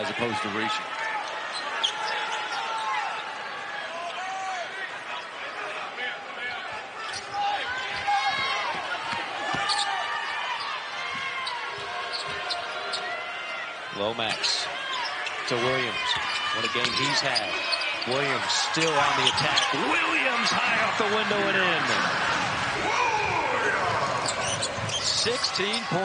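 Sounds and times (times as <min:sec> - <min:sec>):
voices in arena: 0:00.0 - 0:26.0
sneakers squeaking on floor: 0:09.5 - 0:13.1, 0:14.8 - 0:19.8, 0:24.2 - 0:25.8.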